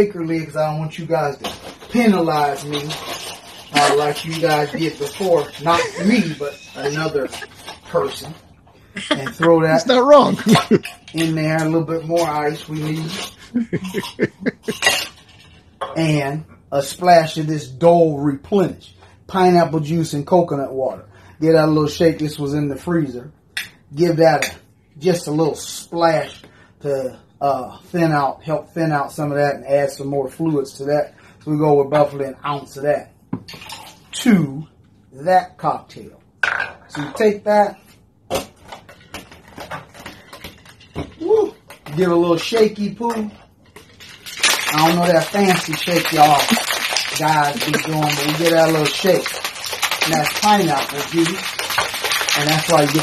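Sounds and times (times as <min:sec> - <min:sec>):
ice clinking in cocktail shaker: 0:02.0 - 0:08.3, 0:43.1 - 0:53.0
person chuckling: 0:03.8 - 0:07.7, 0:08.9 - 0:10.9, 0:13.1 - 0:15.0.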